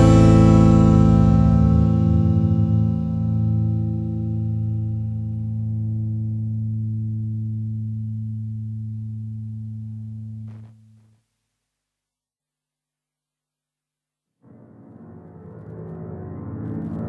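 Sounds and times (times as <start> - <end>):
rock guitar chord ringing out: 0.0 - 9.0.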